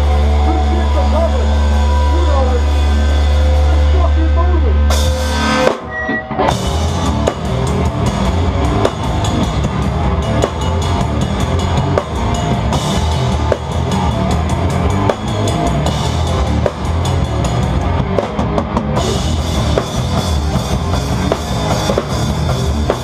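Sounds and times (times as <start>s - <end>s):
distorted bass and guitar: 0.0s - 23.0s
drum and cymbal hits: 0.0s - 23.0s.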